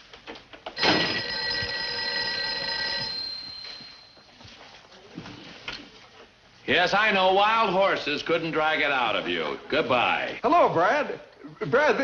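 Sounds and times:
telephone bell ringing: 0.8s - 4.3s.

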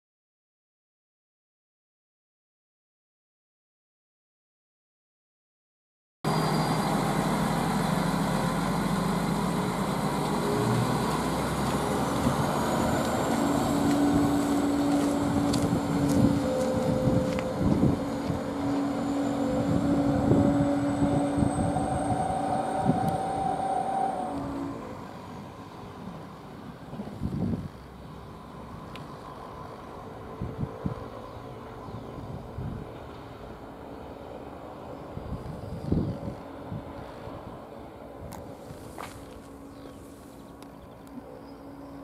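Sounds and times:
rising whine: 6.3s - 25.8s
wheels clicking on track: 6.3s - 28.0s
diesel railcar engine running: 6.3s - 42.0s.

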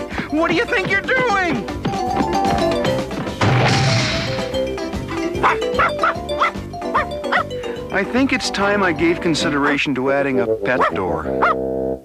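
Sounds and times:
background music: 0.0s - 12.0s
cartoon crash sound effect: 3.4s - 4.6s
short dog barks: 10.8s - 11.6s.

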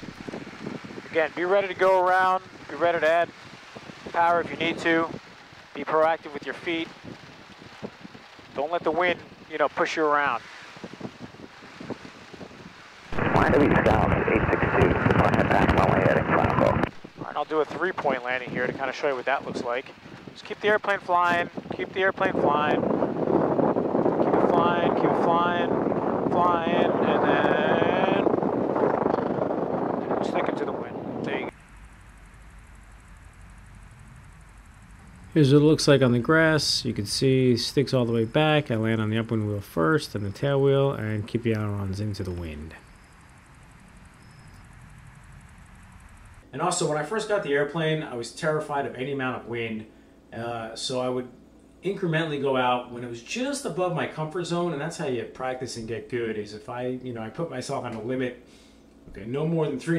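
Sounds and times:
even hiss: 0.0s - 24.1s, 30.2s - 59.9s
wind buffeting microphone: 0.0s - 39.3s
airplane engine noise: 13.1s - 47.3s
faint rapid high ticking: 31.5s - 46.5s.

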